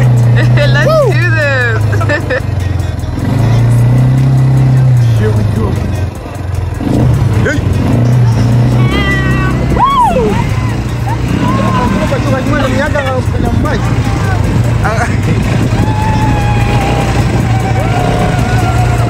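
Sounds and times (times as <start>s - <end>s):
quad bike engine running: 0.0s - 19.0s
voices calling out: 0.0s - 19.0s.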